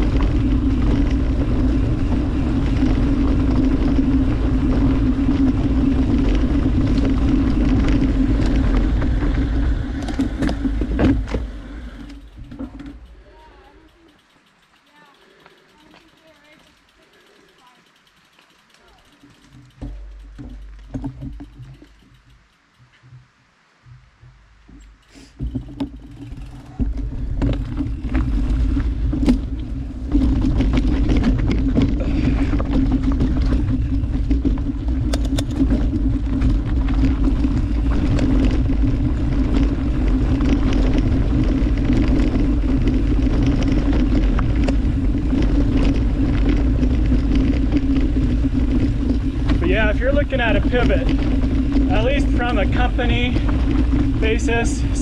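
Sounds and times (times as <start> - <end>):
bike rattling over rocks: 0.0 - 23.0, 24.0 - 55.0
bike tyres rumbling on dirt: 0.0 - 23.3, 23.9 - 55.0.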